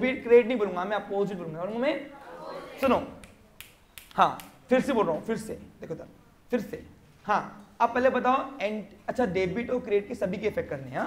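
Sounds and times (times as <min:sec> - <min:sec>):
finger snaps: 0:03.2 - 0:04.6.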